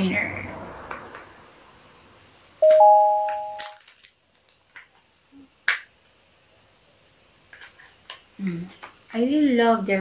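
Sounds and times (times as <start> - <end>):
two-note chime: 2.6 - 3.7
plastic packaging clicks: 3.3 - 5.0.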